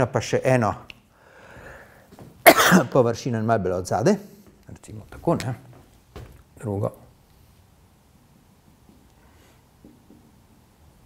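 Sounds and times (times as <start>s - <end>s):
man coughing: 2.4s - 3.0s.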